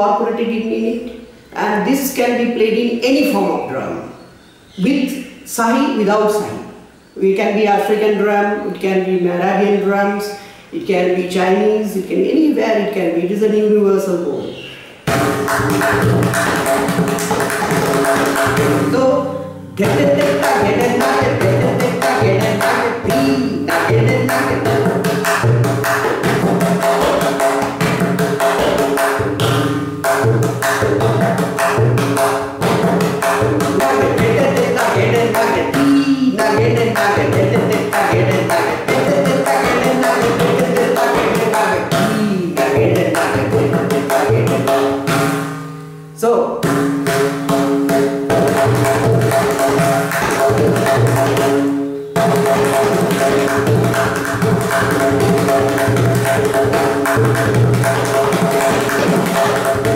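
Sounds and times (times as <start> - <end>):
tabla drums in fast rhythm: 15.0 - 45.8, 46.6 - 59.9.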